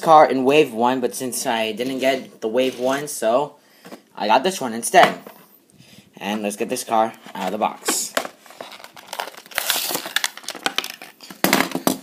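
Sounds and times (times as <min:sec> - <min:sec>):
plastic packaging crinkling: 0:07.4 - 0:11.5.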